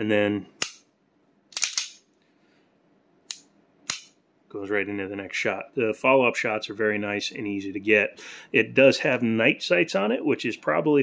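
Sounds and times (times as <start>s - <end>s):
pistol trigger clicks: 1.6s - 2.0s.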